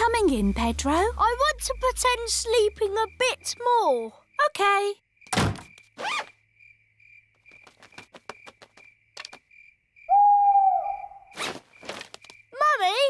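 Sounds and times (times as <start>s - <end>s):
crickets chirping: 0.0s - 13.0s
owl hoot: 10.1s - 11.4s.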